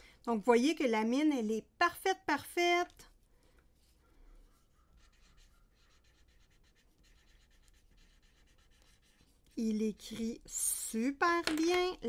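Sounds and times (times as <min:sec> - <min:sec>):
marker scratching on paper: 0:03.8 - 0:09.6.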